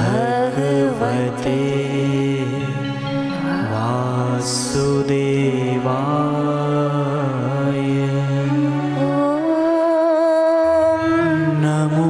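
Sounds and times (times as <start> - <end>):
woman singing a chant: 0.0 - 2.4, 8.9 - 12.0
low drone: 0.0 - 12.0.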